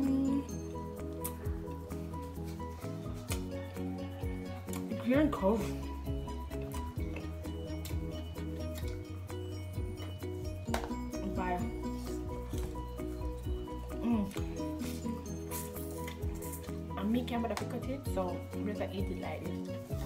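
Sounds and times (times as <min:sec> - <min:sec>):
background music with bass line: 0:00.0 - 0:20.0.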